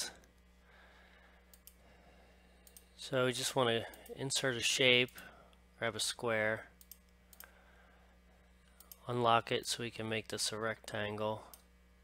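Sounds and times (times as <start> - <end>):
faint low hum: 0.0 - 12.0
computer mouse clicks: 1.5 - 1.8, 2.6 - 2.9, 6.8 - 7.5, 8.7 - 9.0.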